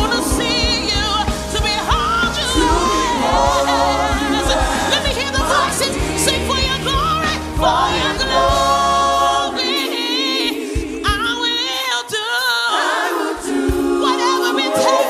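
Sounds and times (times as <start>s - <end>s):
bass: 0.0s - 9.8s
gospel singer with choir: 0.0s - 15.0s.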